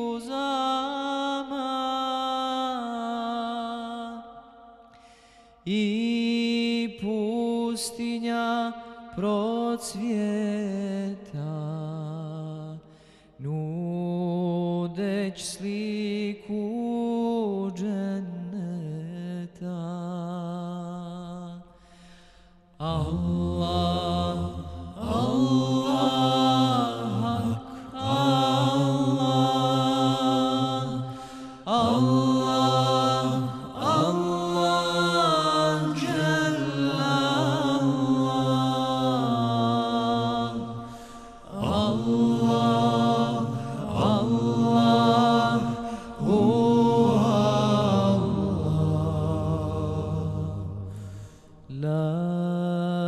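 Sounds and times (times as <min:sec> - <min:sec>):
short breaths: 0:04.9 - 0:05.6, 0:12.9 - 0:13.4, 0:21.7 - 0:22.8, 0:31.1 - 0:31.6, 0:40.8 - 0:41.4, 0:50.9 - 0:51.6.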